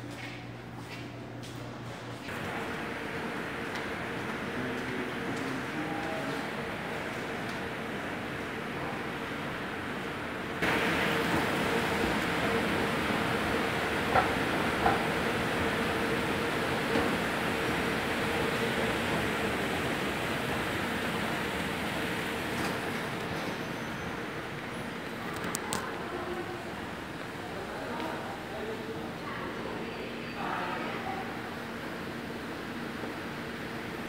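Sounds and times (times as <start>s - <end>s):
indoor machinery drone: 0.0s - 34.0s.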